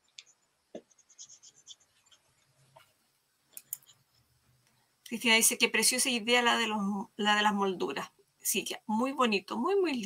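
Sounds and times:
paintbrush scratching and clicking: 0.0s - 2.9s.

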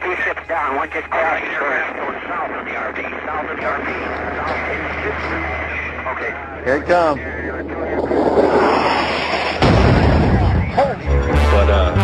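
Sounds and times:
heavy low boom: 7.2s - 11.9s
explosion blast: 7.5s - 10.9s.

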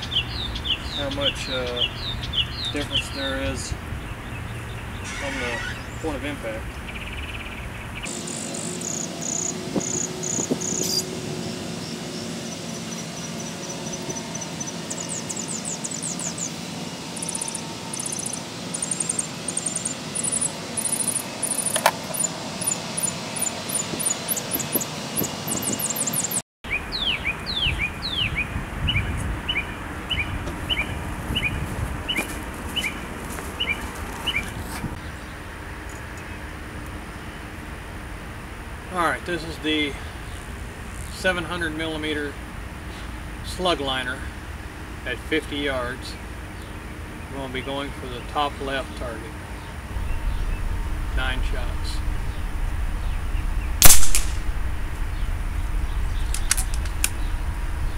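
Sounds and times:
songbirds chirping: 0.0s - 37.6s, 42.7s - 54.0s
steady background hum: 0.0s - 57.9s.

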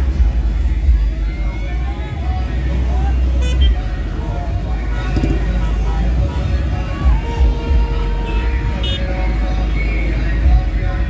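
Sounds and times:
crowd talking and calling: 0.0s - 11.0s
vehicle engines rumbling: 0.0s - 11.0s.

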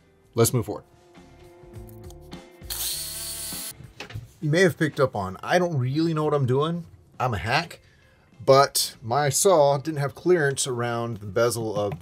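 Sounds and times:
quiet background music: 0.0s - 12.0s
electric jigsaw cutting: 2.7s - 3.7s.

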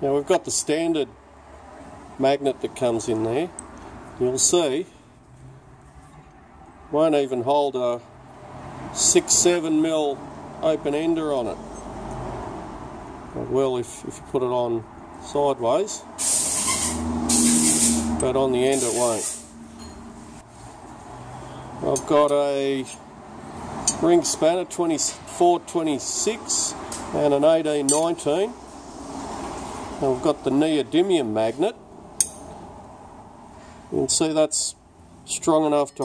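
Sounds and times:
hissing bursts: 16.2s - 18.1s
metallic clink with ring: 19.7s - 20.2s.

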